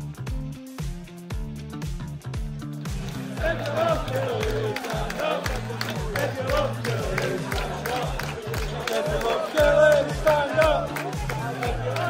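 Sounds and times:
upbeat pop music: 0:00.0 - 0:12.0
crowd cheering and clapping: 0:02.9 - 0:12.0.

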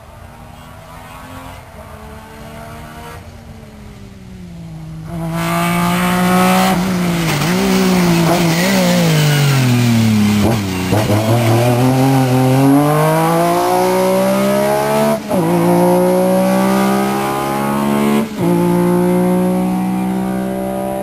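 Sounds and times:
rally car engine revving: 0:00.8 - 0:03.2, 0:04.9 - 0:21.0.

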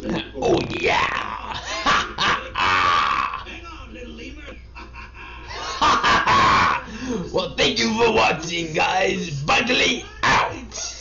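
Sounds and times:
man making growling noises: 0:00.0 - 0:03.5.

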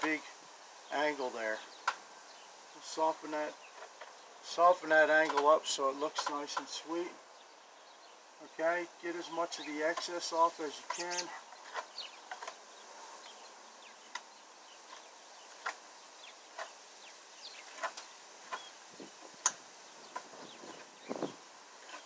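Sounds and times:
insects buzzing: 0:00.0 - 0:22.0.

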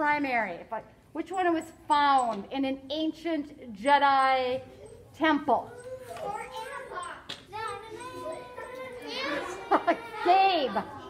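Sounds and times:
children calling out: 0:04.7 - 0:11.0.

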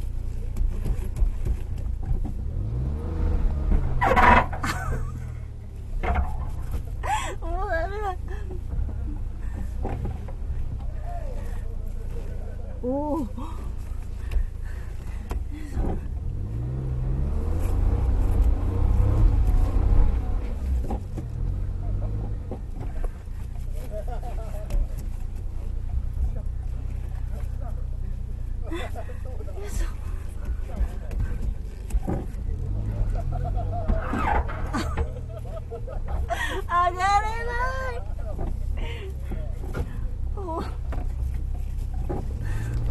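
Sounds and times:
car engine running: 0:00.0 - 0:42.9
voices: 0:07.0 - 0:10.0, 0:10.6 - 0:16.0, 0:21.7 - 0:41.6.

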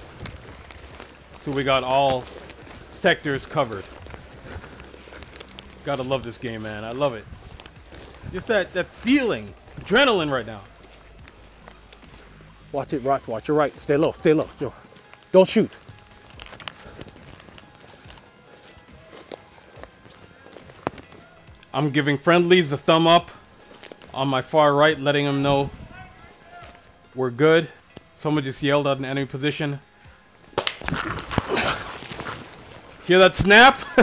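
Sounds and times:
footsteps on pine needles: 0:00.0 - 0:27.4, 0:29.9 - 0:34.0
leaves and twigs rustling: 0:00.0 - 0:34.0.

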